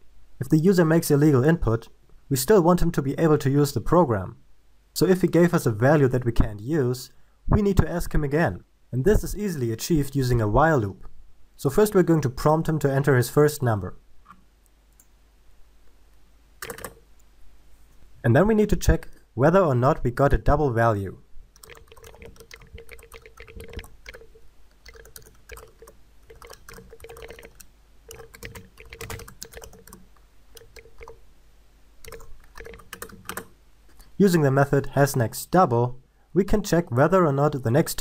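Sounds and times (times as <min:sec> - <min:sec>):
keyboard keystroke clicks: 0:16.6 - 0:17.0
computer mouse clicks: 0:16.6 - 0:17.3, 0:21.6 - 0:31.2, 0:32.0 - 0:34.2.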